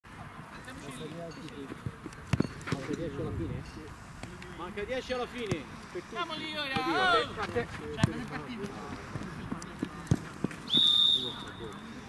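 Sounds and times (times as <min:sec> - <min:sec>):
players' voices: 0:00.5 - 0:12.0
referee's whistle blast: 0:10.7 - 0:11.7.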